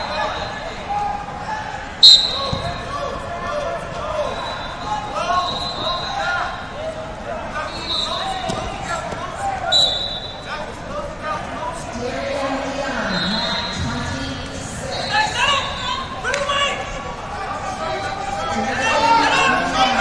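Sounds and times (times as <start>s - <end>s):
murmur of voices in hall: 0.0s - 20.0s
referee's whistle blast: 2.0s - 2.8s, 9.7s - 10.5s
shoes squeaking on mat: 4.2s - 6.4s, 7.6s - 10.9s.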